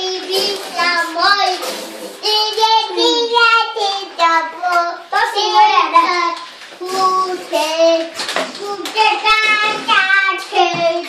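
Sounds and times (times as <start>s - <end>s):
young children singing: 0.0s - 11.0s.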